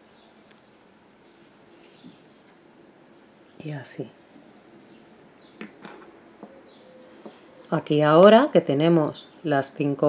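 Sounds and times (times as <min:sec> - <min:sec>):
fabric rustling: 0:00.0 - 0:02.7.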